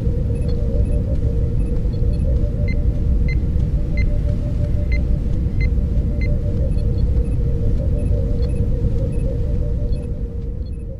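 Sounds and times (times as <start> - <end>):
deep steady rumble: 0.0 - 10.9
mid-pitched hum: 0.0 - 10.9.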